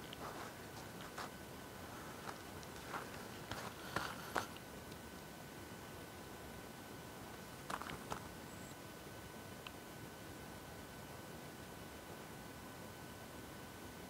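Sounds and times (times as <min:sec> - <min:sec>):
faint steady high tone: 0:08.3 - 0:14.0.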